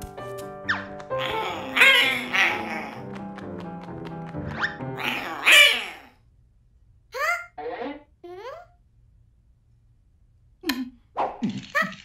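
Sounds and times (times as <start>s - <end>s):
cartoon parrot squawk: 1.2s - 3.0s, 5.0s - 6.1s.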